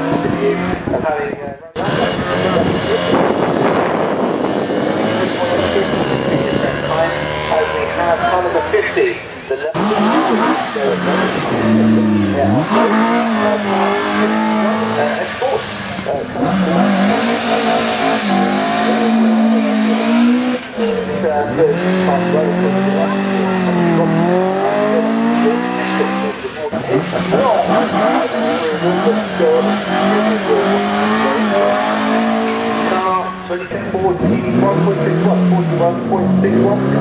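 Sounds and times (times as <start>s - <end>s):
car engines revving: 0.0s - 37.0s.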